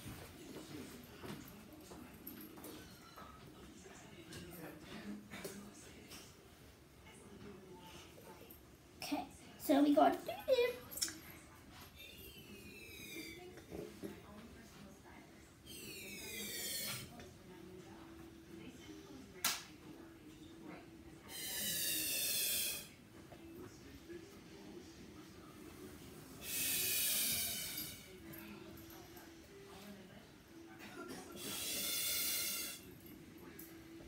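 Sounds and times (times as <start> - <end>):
breaths blown into a ball: 26.4 - 28.0.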